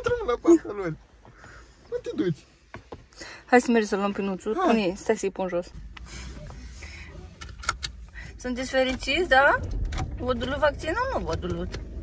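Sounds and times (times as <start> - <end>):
low rumble in car cabin: 3.9 - 12.0.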